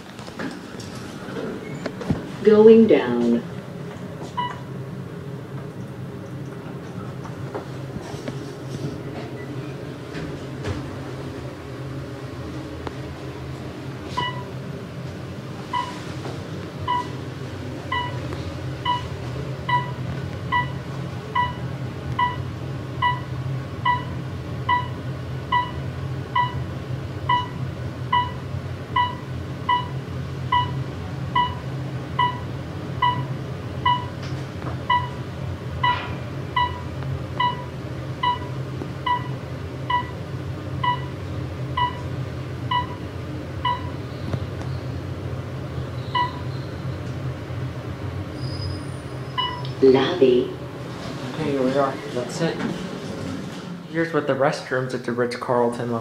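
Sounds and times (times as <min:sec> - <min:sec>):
elevator running hum: 0:00.0 - 0:56.0
short electronic beep: 0:46.1 - 0:46.7, 0:49.4 - 0:49.8.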